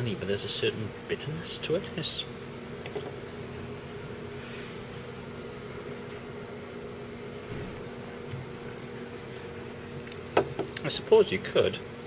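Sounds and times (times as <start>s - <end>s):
low room hum with faint hiss: 0.0s - 12.0s.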